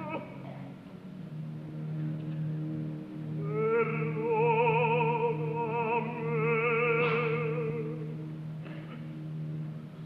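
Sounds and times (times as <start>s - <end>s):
orchestra holding low chord: 0.0s - 10.0s.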